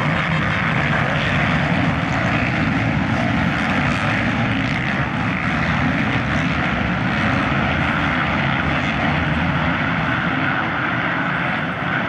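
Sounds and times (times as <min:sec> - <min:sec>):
motocross bike engines running hard: 0:00.0 - 0:12.0.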